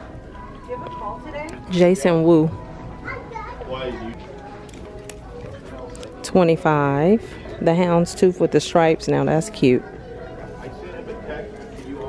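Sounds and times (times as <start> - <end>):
child talking: 3.0 - 4.1.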